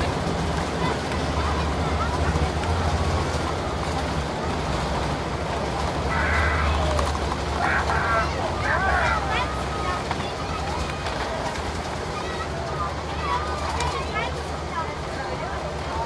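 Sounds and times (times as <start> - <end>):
airplane cabin roar: 0.0 - 16.0
voices talking: 0.0 - 16.0.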